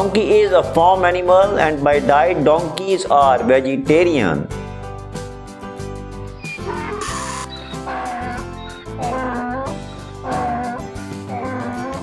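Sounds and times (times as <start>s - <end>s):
background music: 0.0s - 12.0s
donkey braying: 6.4s - 12.0s.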